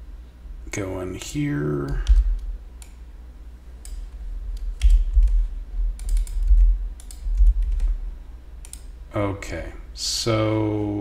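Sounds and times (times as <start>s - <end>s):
keyboard typing: 1.8s - 3.0s, 3.8s - 8.0s, 8.6s - 8.9s.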